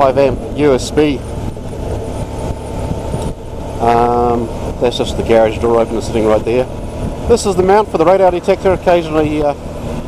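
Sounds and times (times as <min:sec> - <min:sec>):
motorcycle engine running: 0:00.0 - 0:10.0
wind and road noise: 0:00.0 - 0:10.0.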